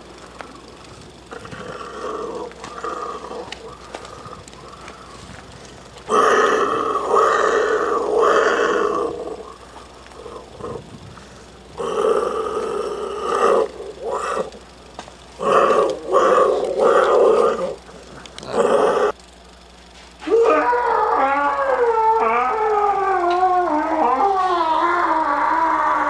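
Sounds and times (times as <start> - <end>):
man's wordless vocal noises: 17.6 - 19.1.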